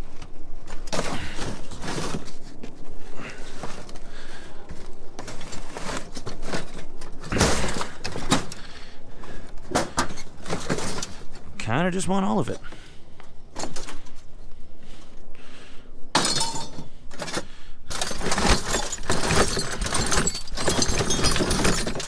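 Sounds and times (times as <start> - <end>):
scrap metal clanking: 4.6 - 8.6.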